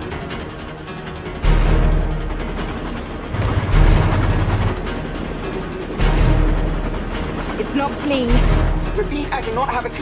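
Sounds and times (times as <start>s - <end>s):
dramatic orchestral score: 0.0s - 10.0s
moving train rumble: 0.0s - 10.0s.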